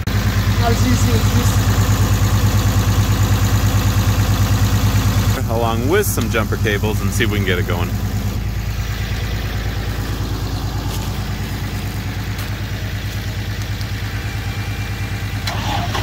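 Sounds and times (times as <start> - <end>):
truck engine idling: 0.0 - 16.0.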